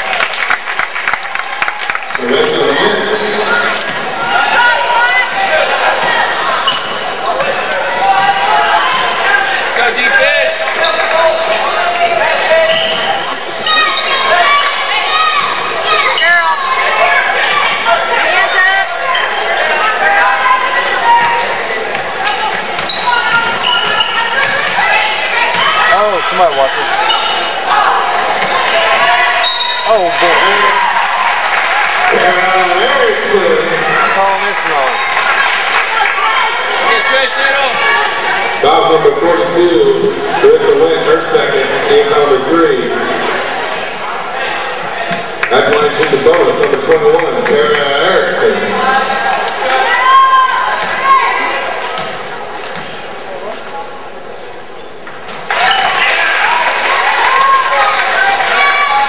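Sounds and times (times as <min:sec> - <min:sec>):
crowd and player voices: 0:00.0 - 0:59.0
shoes squeaking on gym floor: 0:21.2 - 0:25.0.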